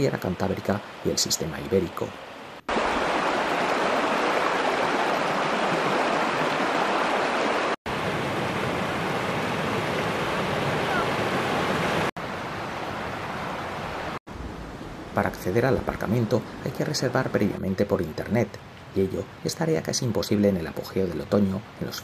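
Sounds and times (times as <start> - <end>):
river rushing over rocks: 2.7 - 14.2.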